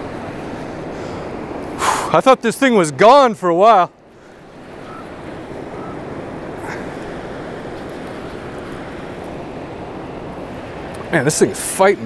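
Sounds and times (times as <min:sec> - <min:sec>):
fast river rushing: 0:00.0 - 0:12.0.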